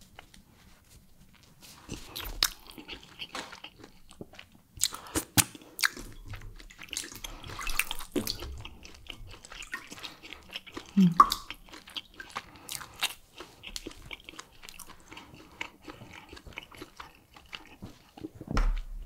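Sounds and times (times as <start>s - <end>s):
chewing and biting food: 1.2s - 19.0s
sharp mouth clicks: 10.9s - 11.6s.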